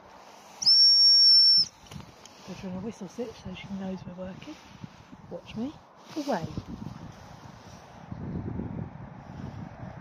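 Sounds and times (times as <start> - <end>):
dog whistle long high blast: 0.6 - 1.7.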